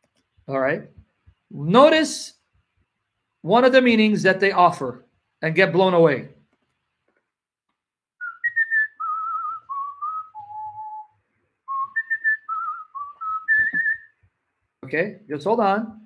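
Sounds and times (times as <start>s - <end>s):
man whistling a tune: 8.2s - 14.2s.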